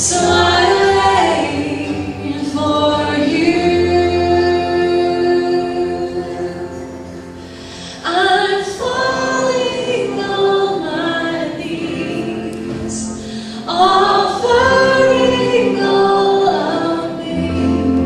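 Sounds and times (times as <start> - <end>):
woman singing: 0.0 - 7.3, 7.9 - 18.0
acoustic guitar: 0.0 - 18.0.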